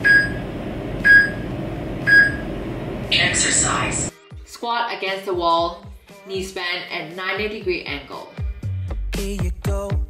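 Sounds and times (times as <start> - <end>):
high electronic timer beeps: 0.0 - 0.4, 1.0 - 1.4, 2.1 - 2.4.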